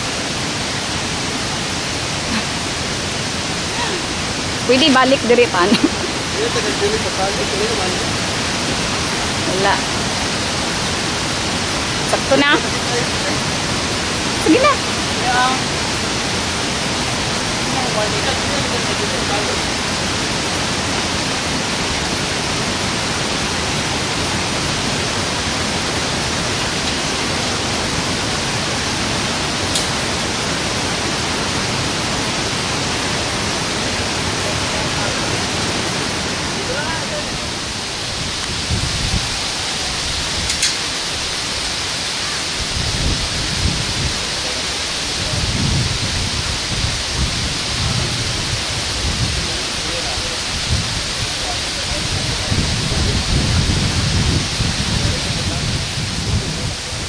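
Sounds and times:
loud rushing noise: 0:00.0 - 0:57.0
wind buffeting microphone: 0:00.0 - 0:57.0.

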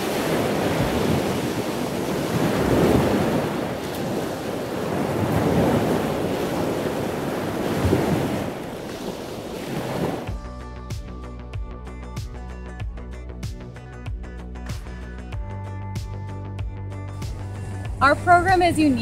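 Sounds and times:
wind buffeting microphone: 0:00.0 - 0:10.3.

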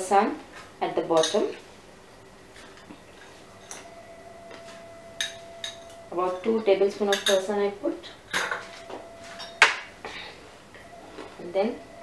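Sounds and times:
faint steady tone: 0:02.1 - 0:12.0
metal spoon clinking glass bowl: 0:05.2 - 0:06.5, 0:07.1 - 0:07.5.

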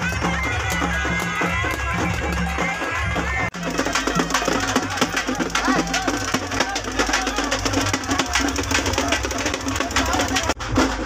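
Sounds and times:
fast procession drumming: 0:00.0 - 0:11.0.

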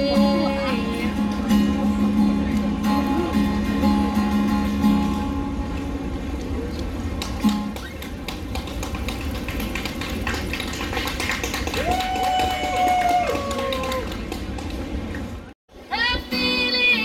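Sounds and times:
acoustic guitar strummed chords: 0:00.0 - 0:06.0
street noise: 0:00.0 - 0:17.0.

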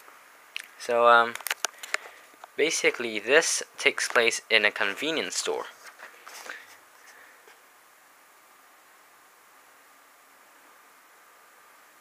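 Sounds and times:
faint steady hiss: 0:00.0 - 0:12.0
paper page rustling: 0:05.7 - 0:07.2.

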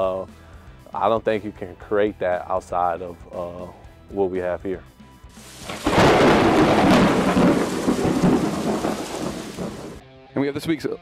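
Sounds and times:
thunder rumbling and cracking: 0:05.6 - 0:10.0.

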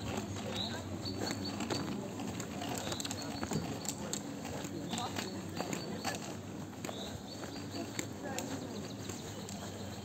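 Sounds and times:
footsteps on dirt trail: 0:00.0 - 0:10.0
people's voices: 0:00.0 - 0:10.0.

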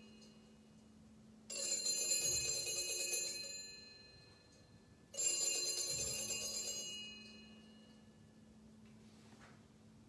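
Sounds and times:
small bells ringing: 0:00.0 - 0:00.7, 0:01.5 - 0:08.3.

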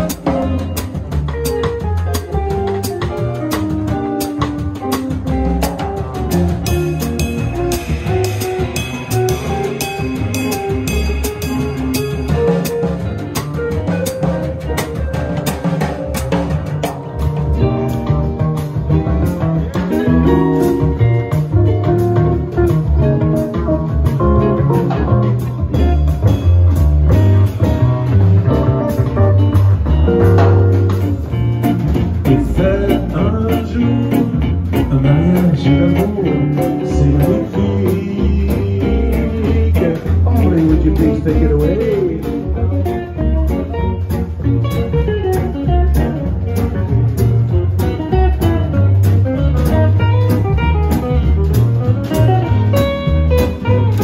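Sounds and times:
drum kit: 0:00.0 - 0:54.0
guitars picking a tune: 0:00.0 - 0:54.0
upright double bass walking: 0:00.0 - 0:54.0.

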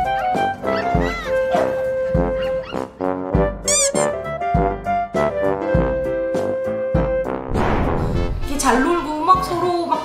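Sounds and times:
upbeat background music: 0:00.0 - 0:10.0
short high arching calls: 0:03.6 - 0:04.2.

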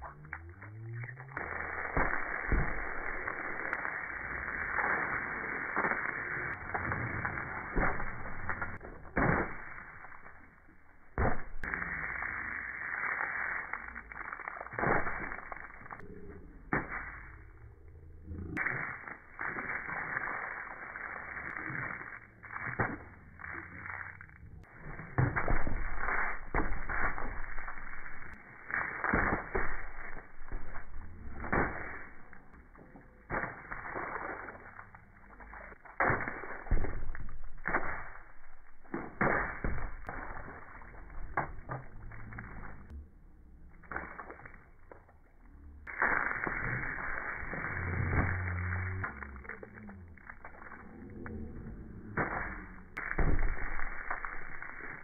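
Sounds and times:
paint splatting against a wall: 0:05.8 - 0:10.5, 0:11.1 - 0:12.0, 0:14.2 - 0:16.0, 0:24.8 - 0:34.9, 0:35.8 - 0:41.8, 0:52.2 - 0:55.0.

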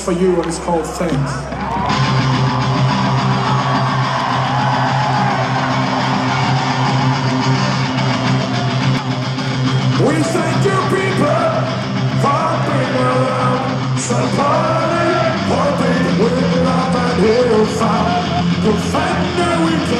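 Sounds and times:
electric guitar: 0:01.5 - 0:19.9
live rock band playing: 0:01.6 - 0:19.9
person singing: 0:10.0 - 0:19.9.

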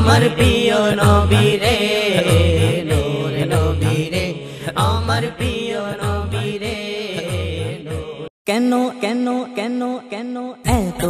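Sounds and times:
male voices singing: 0:00.0 - 0:11.0.

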